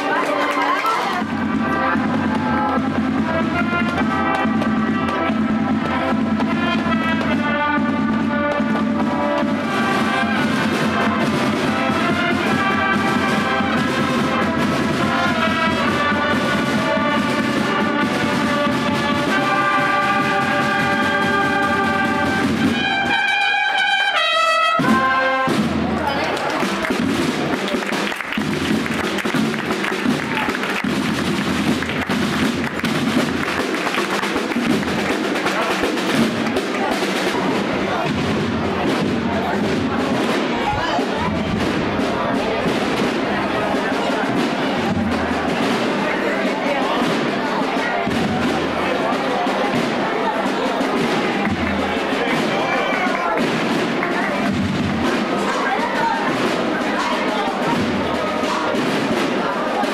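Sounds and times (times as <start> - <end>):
brass band playing slow march: 0.0 - 59.9
drum corps beating drums: 0.0 - 59.9.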